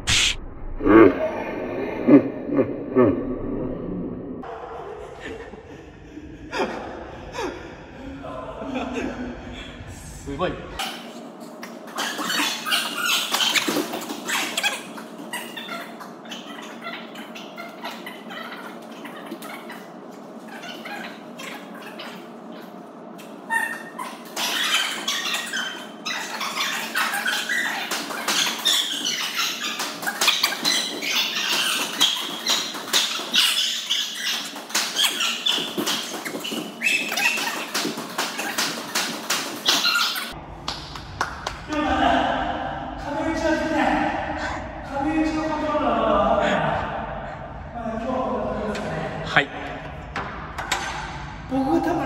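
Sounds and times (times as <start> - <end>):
sneakers squeaking on wooden floor: 23.5 - 40.4.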